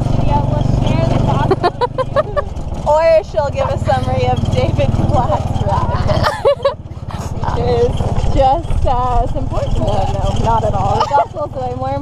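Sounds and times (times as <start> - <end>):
people's voices: 0.0 - 12.0
vehicle engine drone: 0.0 - 12.0.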